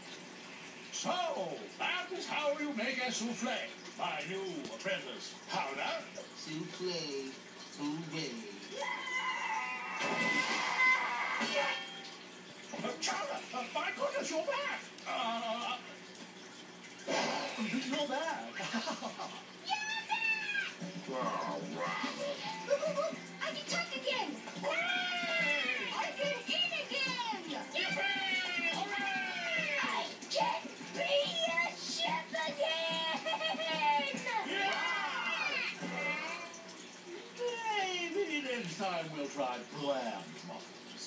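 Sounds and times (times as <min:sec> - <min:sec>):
cartoon speech from television: 0:12.8 - 0:15.9, 0:19.6 - 0:38.9.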